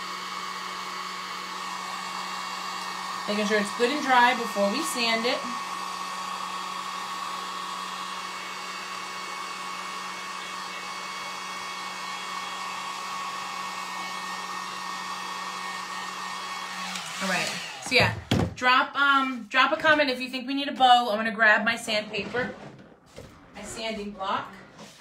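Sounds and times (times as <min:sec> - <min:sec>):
heat gun blowing air: 0:00.0 - 0:18.5.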